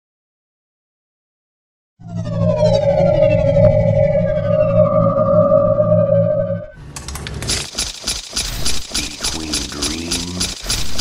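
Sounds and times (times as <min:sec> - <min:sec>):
electronic tones gliding downward: 0:02.0 - 0:06.8
low humming drone: 0:02.0 - 0:06.8.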